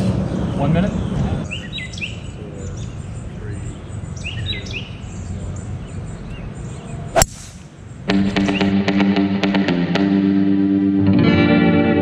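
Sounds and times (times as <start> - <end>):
birds chirping: 0.0 - 10.3.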